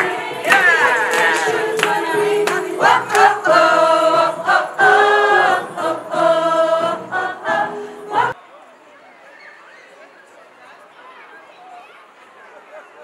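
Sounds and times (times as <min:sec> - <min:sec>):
women's choir singing: 0:00.0 - 0:08.4.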